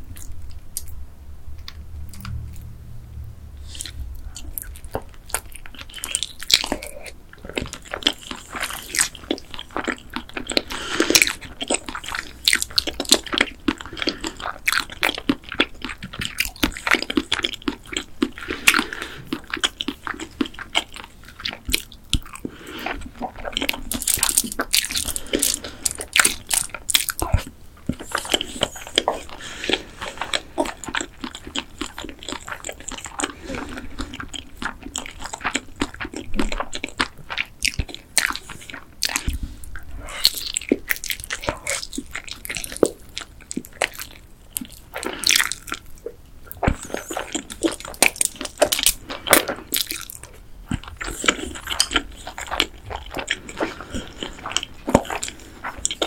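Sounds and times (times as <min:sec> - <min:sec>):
crunchy biting and chewing: 0:03.6 - 0:56.0.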